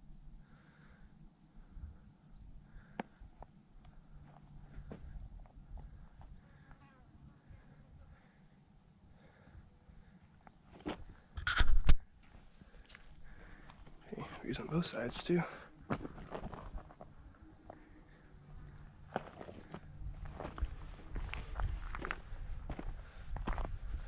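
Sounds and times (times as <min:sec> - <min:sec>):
footsteps on dirt and rock: 0:15.2 - 0:17.9, 0:18.6 - 0:24.0.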